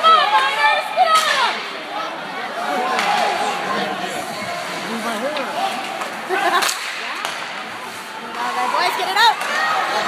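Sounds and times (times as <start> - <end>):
sharp crack from hockey play: 1.1 - 1.7, 2.9 - 3.4, 5.7 - 8.6, 9.3 - 9.9.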